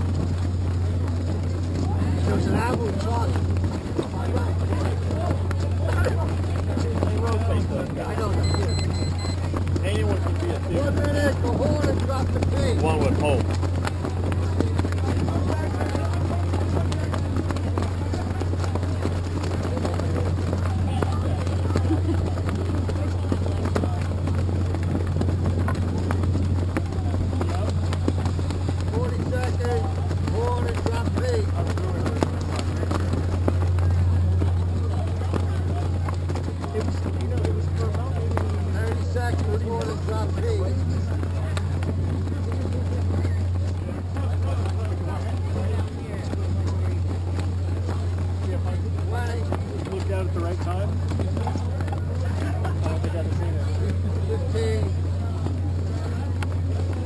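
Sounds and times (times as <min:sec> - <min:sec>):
people talking indistinctly: 0:00.0 - 0:57.0
steady low hum: 0:00.0 - 0:57.0.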